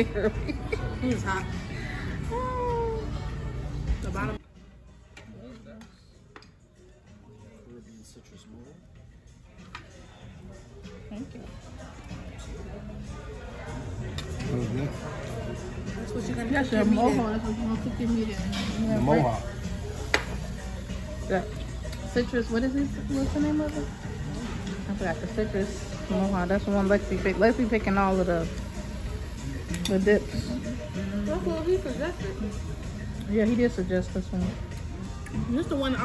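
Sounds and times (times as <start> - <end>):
restaurant music: 0.0 - 36.0.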